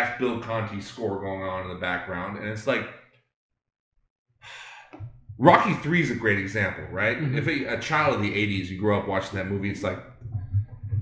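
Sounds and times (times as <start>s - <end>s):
man inhaling: 4.4s - 5.0s.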